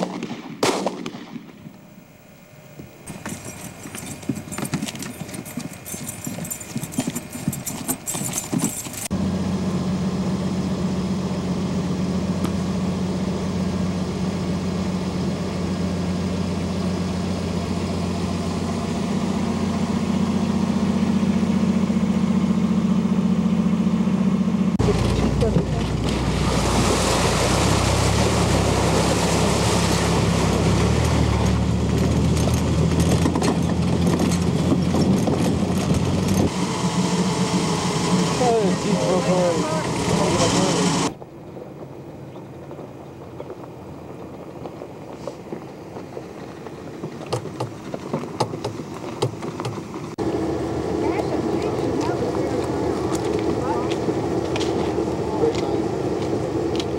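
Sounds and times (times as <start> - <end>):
vehicle driving over rough ground: 0.0 - 56.9
vehicle engine idling: 1.8 - 56.9.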